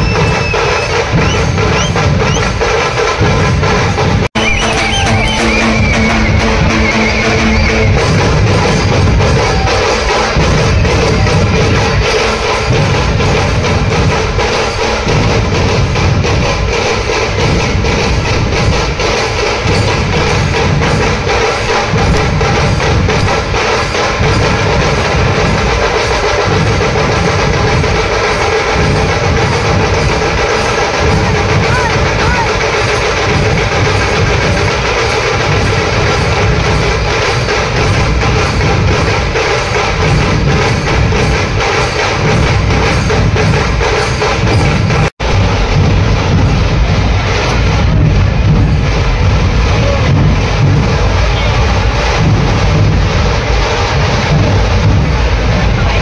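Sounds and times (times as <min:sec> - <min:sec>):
small drums cracking rapidly: 0:00.0 - 0:04.3, 0:04.9 - 0:56.0
barrel drums beating fast rhythm: 0:00.0 - 0:56.0.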